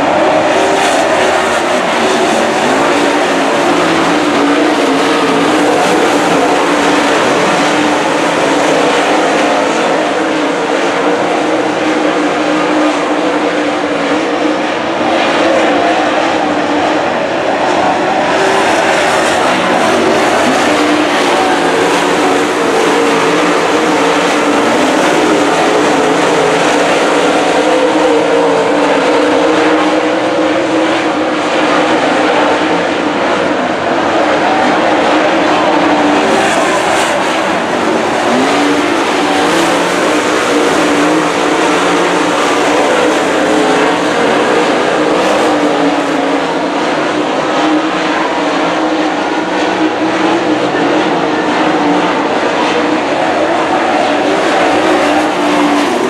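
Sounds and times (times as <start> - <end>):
race car engines running hard: 0.0 - 56.0.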